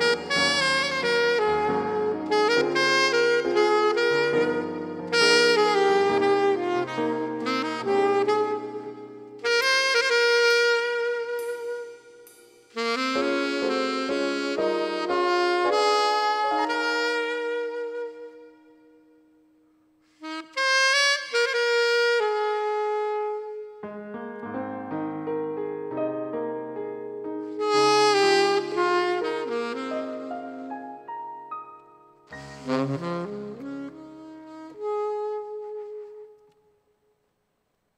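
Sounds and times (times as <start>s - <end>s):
saxophone ballad melody: 0.0s - 37.2s.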